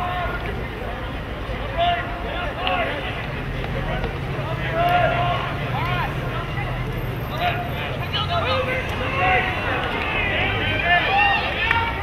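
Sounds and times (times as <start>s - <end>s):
people shouting and calling out: 0.0s - 12.0s
long held shout: 8.5s - 12.0s.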